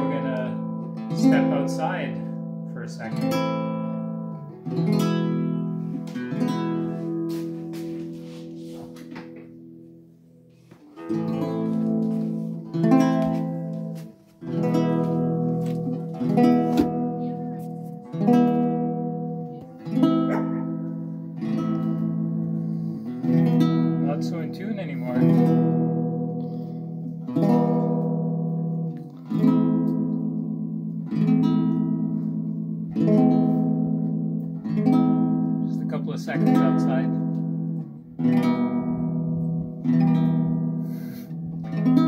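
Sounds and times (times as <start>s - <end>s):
classical guitar strummed chords: 0.0s - 42.0s.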